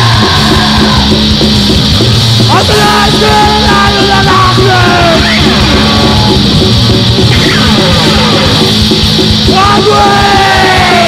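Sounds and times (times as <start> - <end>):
distorted guitars: 0.0 - 11.0
fast drumming: 0.0 - 11.0.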